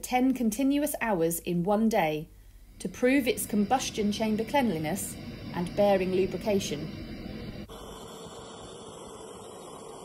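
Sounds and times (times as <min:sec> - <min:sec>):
jet turbine engine running: 0:02.6 - 0:10.0.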